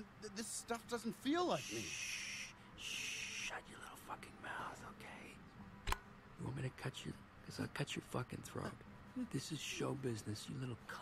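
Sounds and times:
sharp click: 5.8s - 6.0s.

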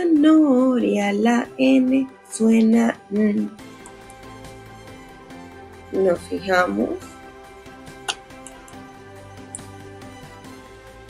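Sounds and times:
soft background music: 0.0s - 11.0s
mouse click: 8.1s - 8.8s.

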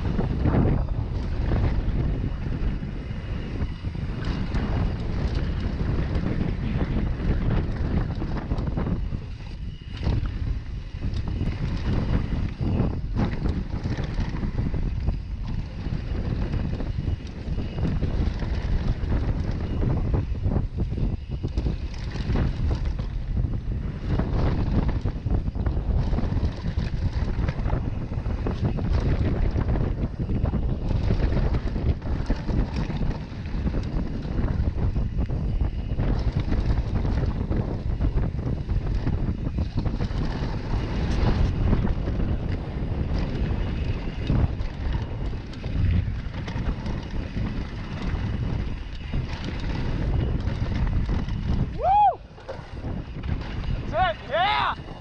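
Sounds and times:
bike chain and frame clatter: 0.0s - 55.0s
tyres rumbling on dirt trail: 0.0s - 55.0s
wind buffeting microphone: 0.0s - 55.0s.

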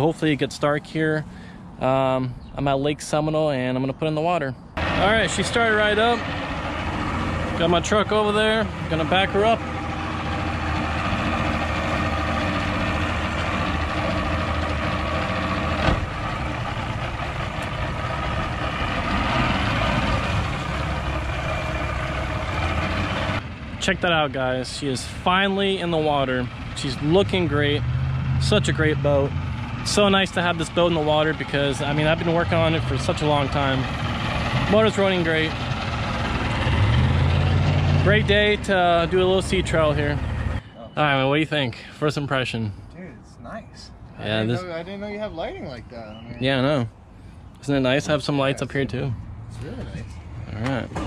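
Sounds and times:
outboard motor idling: 4.8s - 23.4s.

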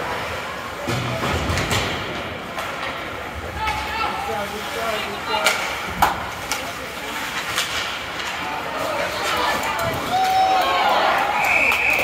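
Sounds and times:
voices of players and spectators: 0.0s - 12.0s
hockey sticks clacking: 0.1s - 12.0s
skates scraping on ice: 2.6s - 11.3s.

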